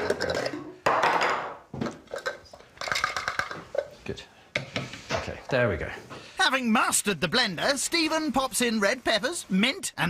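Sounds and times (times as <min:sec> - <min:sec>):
people talking: 0:05.2 - 0:10.0.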